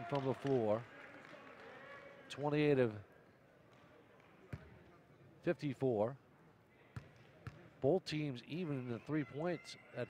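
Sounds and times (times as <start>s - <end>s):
basketball bouncing on court: 4.5s - 4.8s, 7.0s - 7.7s.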